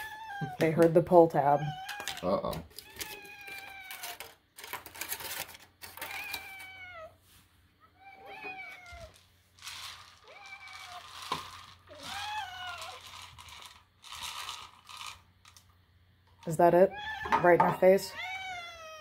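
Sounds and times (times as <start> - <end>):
cats meowing: 0.0 - 4.4, 5.9 - 7.2, 7.8 - 9.3, 10.0 - 13.6, 16.8 - 19.0.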